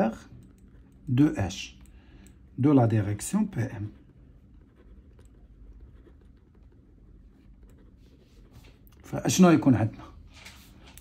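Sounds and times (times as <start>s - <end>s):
ballpoint pen writing on paper: 4.0s - 8.6s.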